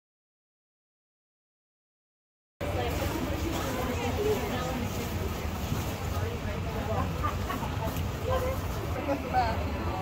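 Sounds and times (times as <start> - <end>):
people chattering: 2.6 - 10.0.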